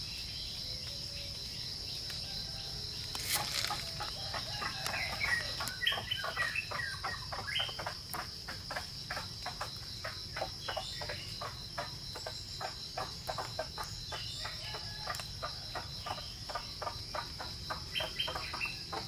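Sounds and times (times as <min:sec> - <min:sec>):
insects trilling: 0:00.0 - 0:19.0.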